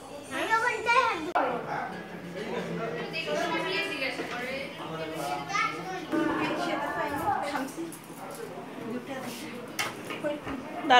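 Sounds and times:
group of people chattering: 0.0s - 10.9s
children's voices: 5.2s - 8.2s.

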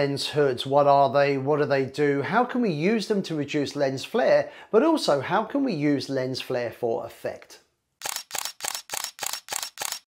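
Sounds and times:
camera shutter clicks: 8.0s - 10.0s.

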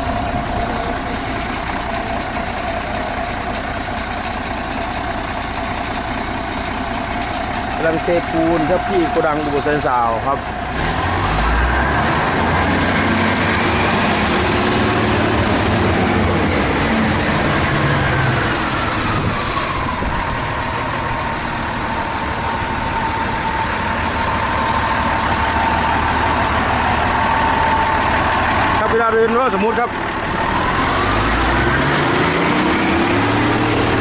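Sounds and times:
diesel engine running: 0.0s - 34.0s.

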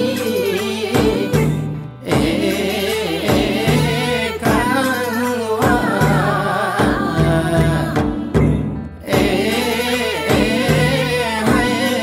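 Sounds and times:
folk singing with instruments: 0.0s - 12.0s
low beat: 0.0s - 12.0s.

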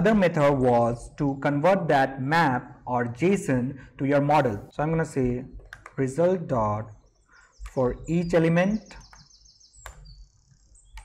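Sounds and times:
small bird chirping: 5.1s - 11.0s
laptop keyboard clicks: 5.6s - 6.0s.

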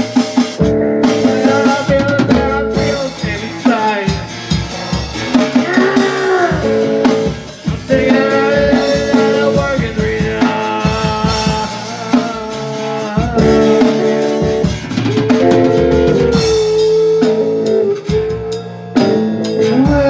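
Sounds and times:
drum kit: 0.0s - 20.0s
lead guitar bending notes: 0.0s - 20.0s
rhythm guitar: 0.0s - 20.0s.

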